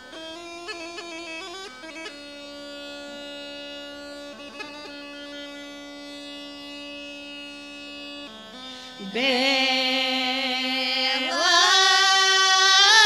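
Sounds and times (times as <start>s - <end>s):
bagpipe playing over drone: 0.0s - 13.0s.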